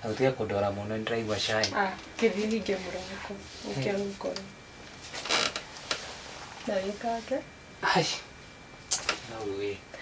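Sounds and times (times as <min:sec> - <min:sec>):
wooden bed creaking: 0:05.1 - 0:06.0.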